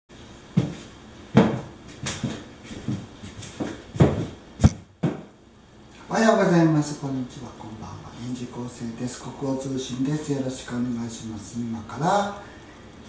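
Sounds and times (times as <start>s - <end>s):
footsteps on hard floor: 0.6s - 5.3s.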